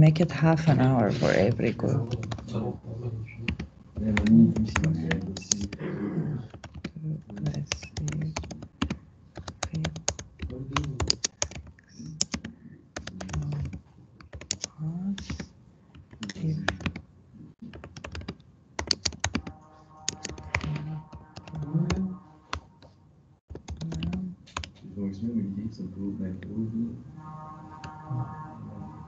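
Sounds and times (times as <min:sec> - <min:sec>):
computer keyboard typing: 0:02.1 - 0:02.5, 0:03.4 - 0:05.8, 0:06.5 - 0:17.0, 0:17.6 - 0:22.9, 0:23.5 - 0:24.8.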